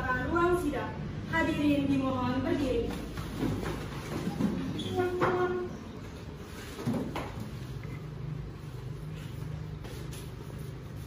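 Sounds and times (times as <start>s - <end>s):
wooden chairs moving on tiled floor: 3.0s - 11.0s
chair leg scraping with a squeal: 4.6s - 5.8s.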